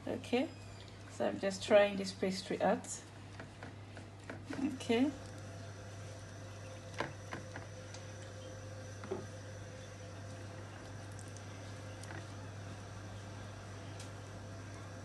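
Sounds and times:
washing machine humming: 0:00.0 - 0:15.0.

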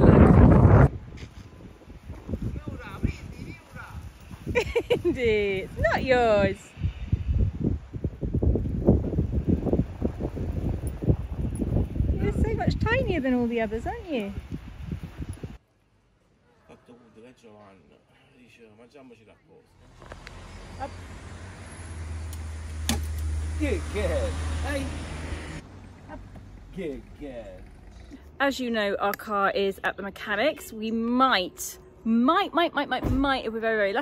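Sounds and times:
wind buffeting microphone: 0:00.0 - 0:15.6
vehicle engine hum: 0:19.8 - 0:28.4.

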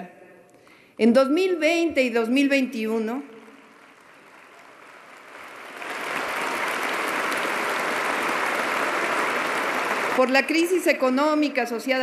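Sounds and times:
large audience applauding: 0:03.3 - 0:11.3.

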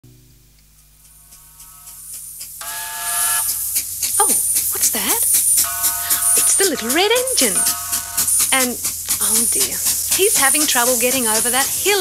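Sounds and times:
steam train chuffing: 0:01.0 - 0:12.0
steam whistle: 0:02.6 - 0:04.4, 0:05.6 - 0:08.6.

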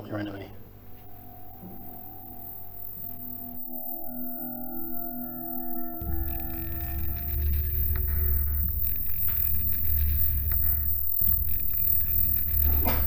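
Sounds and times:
loud low rumble: 0:00.6 - 0:11.6.

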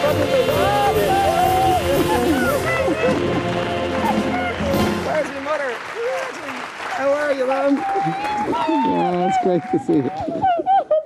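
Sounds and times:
audience applauding: 0:00.0 - 0:11.0
excited voices calling out: 0:00.1 - 0:03.3.

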